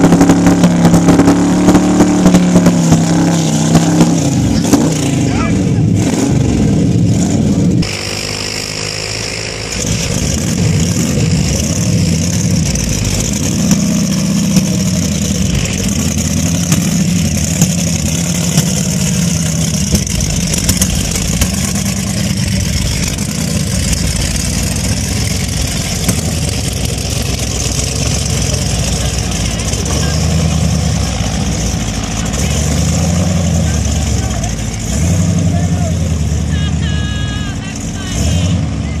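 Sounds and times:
engine revving hard: 0.0s - 39.0s.

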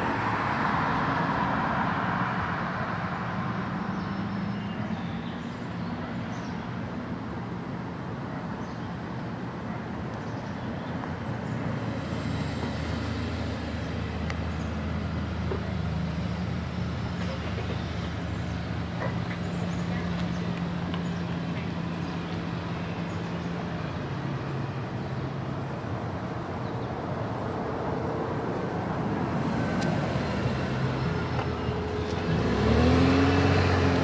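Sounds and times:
vehicle engine humming: 0.0s - 34.0s.

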